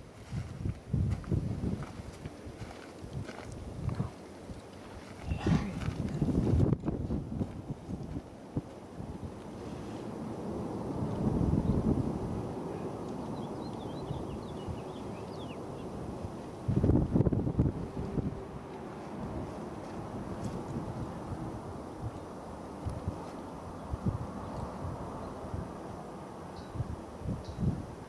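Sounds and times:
wind buffeting microphone: 0:00.0 - 0:28.0
jet engines rumbling: 0:03.6 - 0:28.0.

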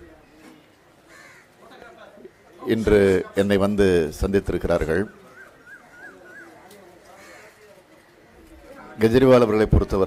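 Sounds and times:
faint crow caw: 0:00.9 - 0:02.8, 0:05.1 - 0:08.6.

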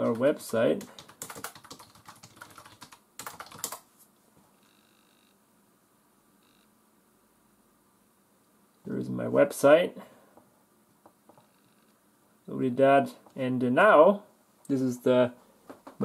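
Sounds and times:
typing on laptop keyboard: 0:00.0 - 0:03.9.

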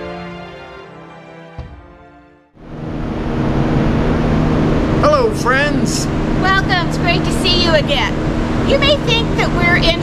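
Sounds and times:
low hum: 0:02.6 - 0:10.0
rushing background noise: 0:02.6 - 0:10.0
voices: 0:05.0 - 0:10.0.

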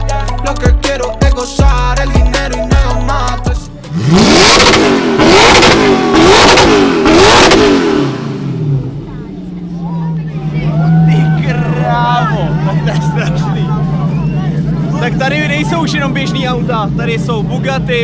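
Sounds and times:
car engine revving and idling: 0:01.9 - 0:18.0
crowd voices: 0:05.7 - 0:18.0.

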